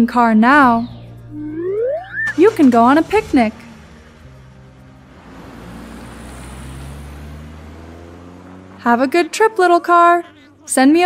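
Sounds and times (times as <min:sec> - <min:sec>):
cartoon car engine running: 0:01.3 - 0:11.0.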